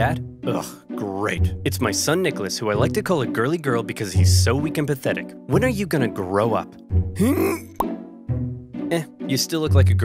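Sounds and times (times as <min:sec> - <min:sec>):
background music: 0:00.0 - 0:10.0
person grunting: 0:07.2 - 0:07.7.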